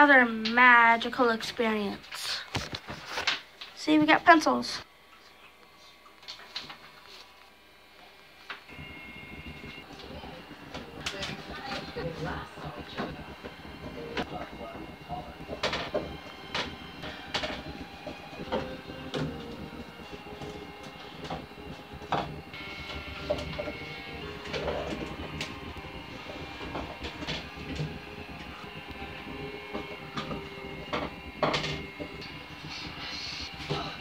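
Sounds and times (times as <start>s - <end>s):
steady background hum: 0.0s - 34.0s.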